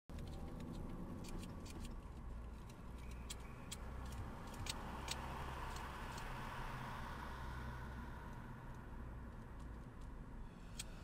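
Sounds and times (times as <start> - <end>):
sharp clicks: 0.1 - 6.4
low engine hum: 0.1 - 11.0
tyre and road noise: 0.1 - 11.0.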